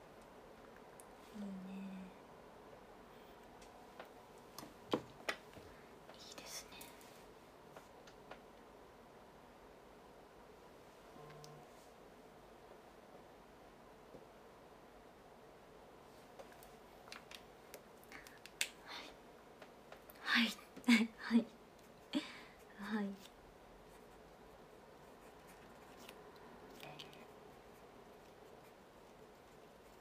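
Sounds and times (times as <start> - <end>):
breathy whisper: 18.0 - 19.3.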